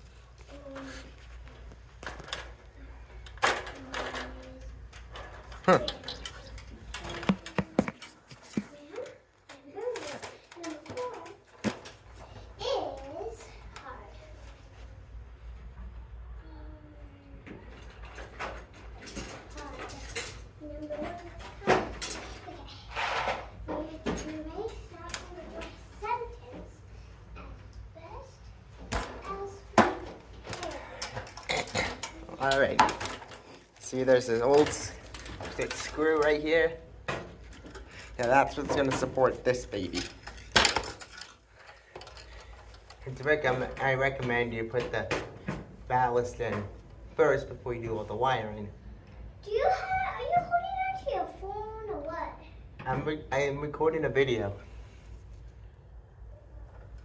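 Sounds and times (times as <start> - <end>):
handling clicks and knocks: 5.0 - 8.7.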